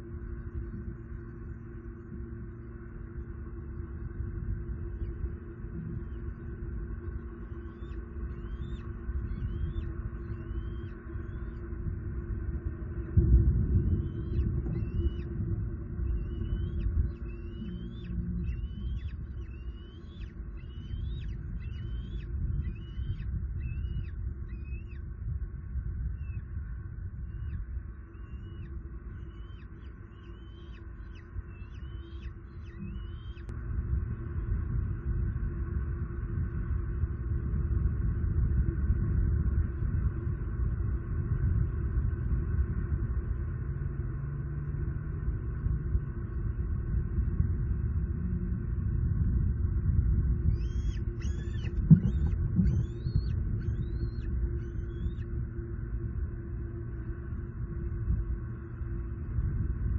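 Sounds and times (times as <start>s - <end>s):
faint steady hum: 0.0s - 59.9s
low rumble: 0.0s - 59.9s
eagle piping chirps: 16.1s - 25.0s, 27.3s - 33.5s, 50.4s - 55.2s.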